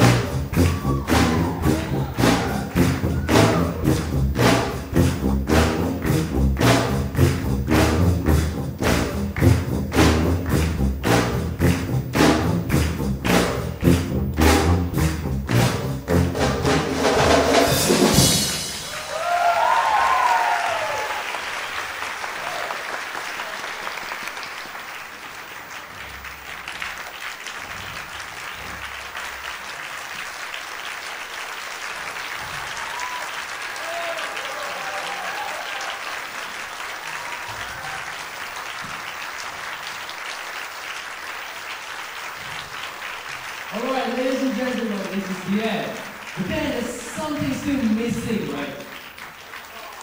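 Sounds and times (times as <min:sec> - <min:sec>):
live band loud chord with drums: 0:00.0 - 0:19.4
audience applauding: 0:00.0 - 0:50.0
whoops and cheers: 0:00.5 - 0:03.9, 0:18.9 - 0:21.4, 0:22.4 - 0:23.6, 0:32.4 - 0:36.3, 0:37.0 - 0:38.3, 0:49.7 - 0:50.0.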